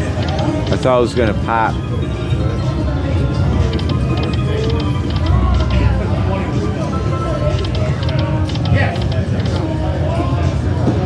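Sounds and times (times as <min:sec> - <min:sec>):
slot machine electronic spin sounds: 0:00.0 - 0:09.8
casino chatter: 0:00.0 - 0:11.0.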